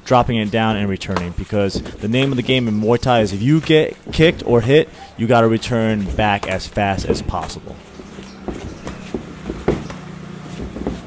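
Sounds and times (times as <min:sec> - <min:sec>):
feet on ring canvas: 0:00.0 - 0:11.0
kicks thudding on shin guards: 0:06.0 - 0:11.0.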